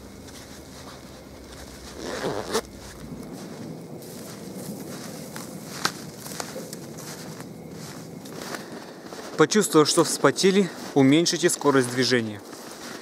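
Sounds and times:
footsteps crunching in snow: 0.0s - 13.0s
jacket zipper pulled shut: 2.0s - 2.6s.

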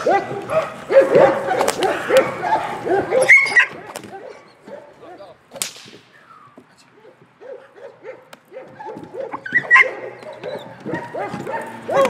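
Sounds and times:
dog barking: 0.0s - 5.2s, 7.0s - 12.0s
sharp crack: 1.4s - 2.4s, 5.5s - 6.5s.

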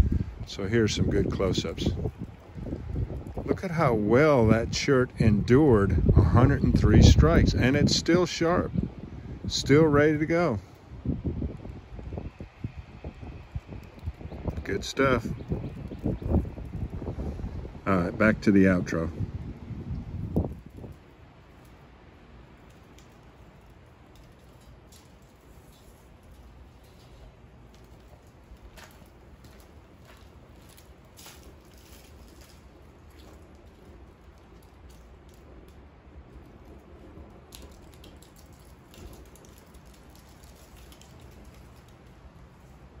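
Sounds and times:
fire crackling: 0.0s - 43.0s
low outdoor rumble: 0.0s - 43.0s.

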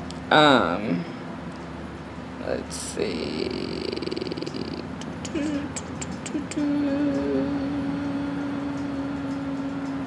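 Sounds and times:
woman humming hmm: 3.2s - 10.0s
mouth clicks: 3.5s - 7.2s.

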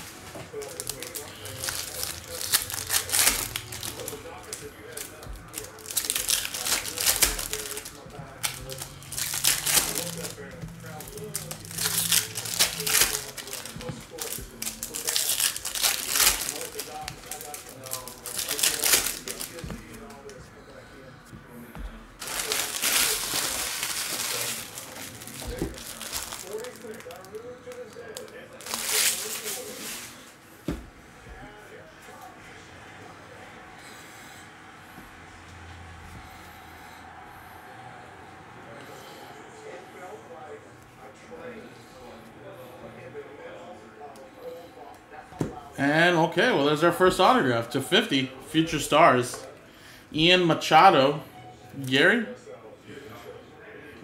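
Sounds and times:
foil wrappers tearing and crinkling: 0.5s - 20.4s, 22.2s - 30.2s.

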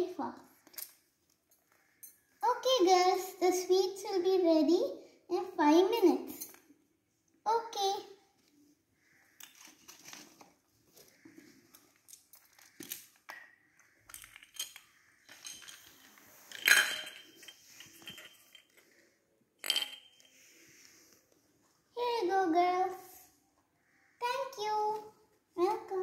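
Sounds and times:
toy dishes clicking and clinking: 11.8s - 18.8s, 19.6s - 20.4s.

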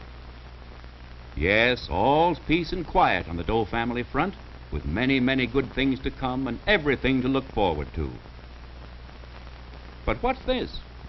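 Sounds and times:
film soundtrack hiss: 0.0s - 11.0s
man narrating: 1.4s - 8.2s, 10.1s - 10.9s.

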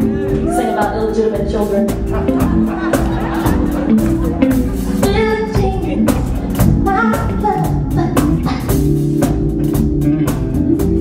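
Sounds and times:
woman singing: 0.0s - 2.1s, 5.0s - 8.9s
soul band playing a groove: 0.0s - 11.0s.

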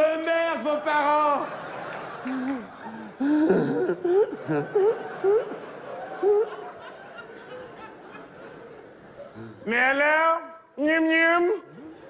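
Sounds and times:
man gasping: 2.2s - 4.0s
man laughing: 2.2s - 6.9s.

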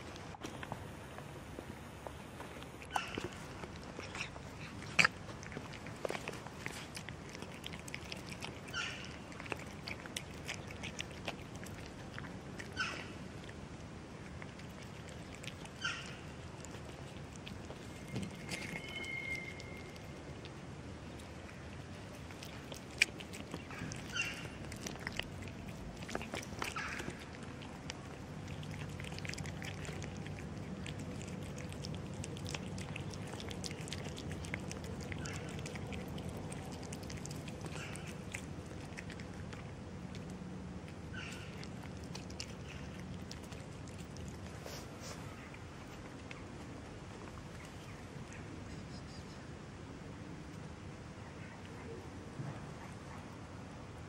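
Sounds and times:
cats chewing food: 0.0s - 48.7s
low steady rumble: 0.0s - 54.0s
cat call: 18.3s - 20.1s.

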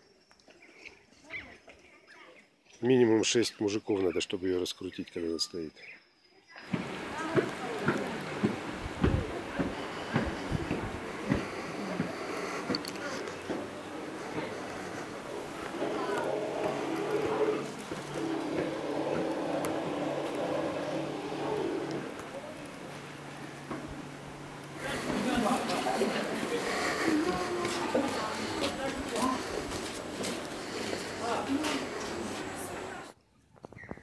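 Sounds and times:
indistinct voices: 6.6s - 33.2s
held voice-like tones: 11.4s - 22.8s, 24.8s - 29.7s.

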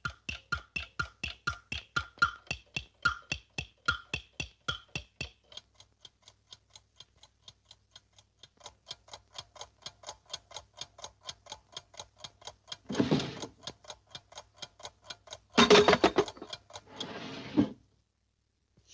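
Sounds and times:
cartoon alarm clock ticking: 0.0s - 17.3s.

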